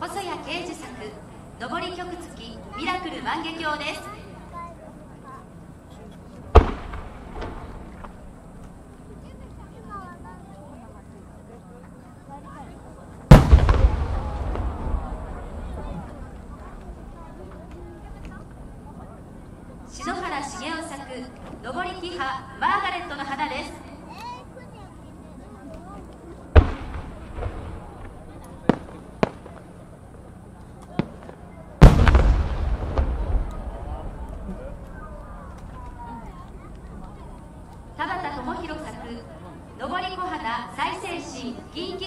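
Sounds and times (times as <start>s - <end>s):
firework cracks: 6.5s - 8.8s, 13.3s - 19.0s, 26.5s - 29.9s, 30.7s - 38.0s
firework shell boom: 6.6s - 8.0s, 13.3s - 17.3s, 31.8s - 34.6s
long low echo: 13.3s - 20.3s, 26.5s - 39.8s.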